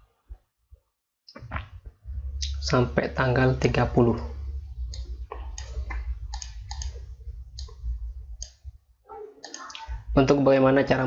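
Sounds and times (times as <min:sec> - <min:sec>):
steady low hum: 0:01.4 - 0:09.0, 0:09.6 - 0:11.0
computer mouse clicking: 0:04.9 - 0:07.8, 0:08.4 - 0:08.6, 0:09.4 - 0:09.9.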